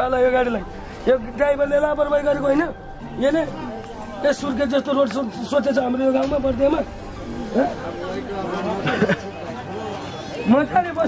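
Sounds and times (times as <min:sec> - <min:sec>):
people talking over each other: 0:00.0 - 0:11.0.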